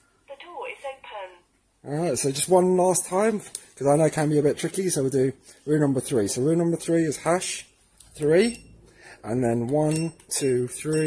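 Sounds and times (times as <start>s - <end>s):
recorded voice prompt: 0.3s - 2.0s.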